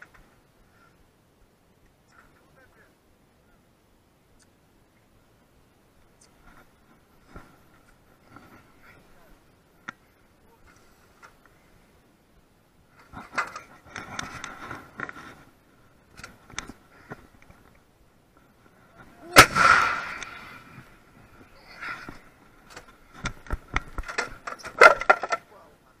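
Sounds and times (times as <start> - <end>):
howitzer firing blast: 19.3 - 20.6.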